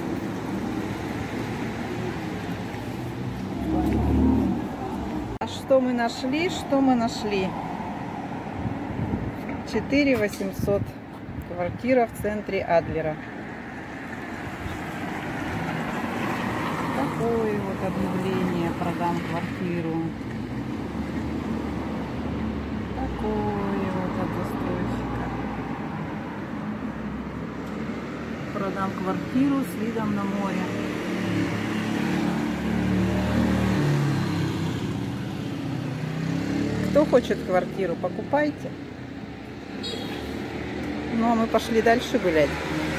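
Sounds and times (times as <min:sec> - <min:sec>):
street traffic hiss: 0:00.0 - 0:42.9.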